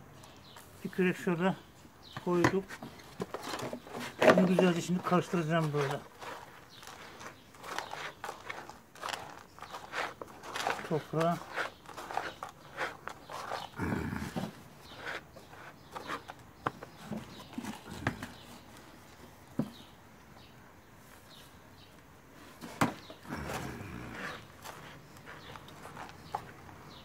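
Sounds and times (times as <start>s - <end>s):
scoop scraping through soil: 3.2s - 16.4s, 22.4s - 26.6s.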